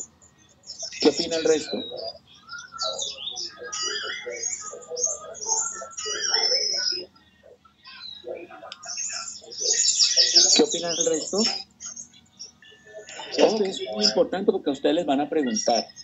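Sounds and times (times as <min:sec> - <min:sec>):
birds chirping and singing: 0:00.0 - 0:16.0
person speaking: 0:00.9 - 0:02.2, 0:02.8 - 0:12.0, 0:12.6 - 0:16.0.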